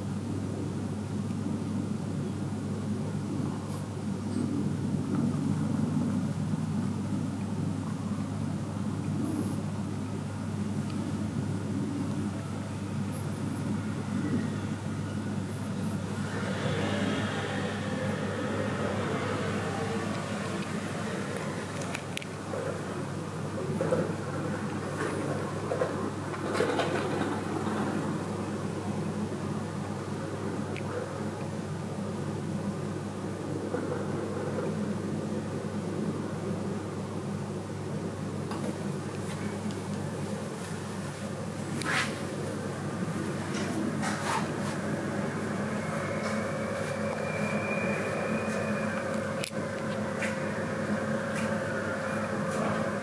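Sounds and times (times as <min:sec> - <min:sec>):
steady low hum: 0:00.0 - 0:26.5, 0:27.1 - 0:53.0.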